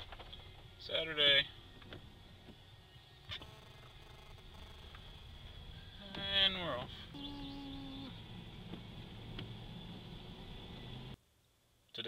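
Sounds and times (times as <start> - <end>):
truck engine and road rumble: 0.0 - 11.2.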